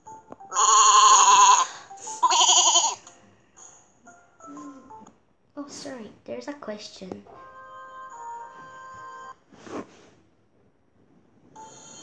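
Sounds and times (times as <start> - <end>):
cartoon sheep bleating: 0.5 - 3.0.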